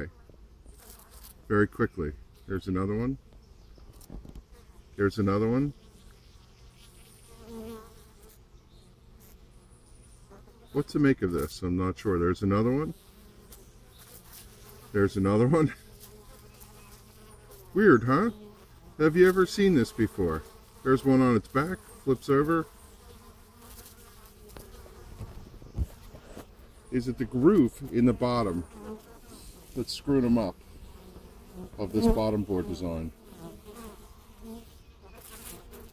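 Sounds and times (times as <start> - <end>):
bee flying past buzzing: 0.2 - 1.5, 3.9 - 11.6, 12.3 - 35.9
honey bees buzzing: 0.6 - 35.9.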